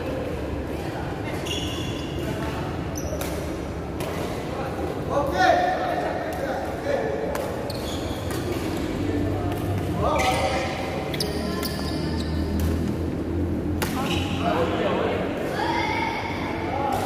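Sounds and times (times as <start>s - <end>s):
rackets striking shuttlecock: 6.2s - 11.9s, 12.5s - 13.0s, 13.7s - 14.2s.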